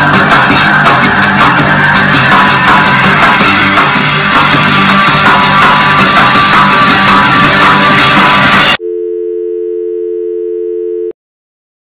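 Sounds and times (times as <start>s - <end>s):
loud rock music with guitar: 0.0s - 8.8s
telephone dial tone: 8.8s - 11.1s.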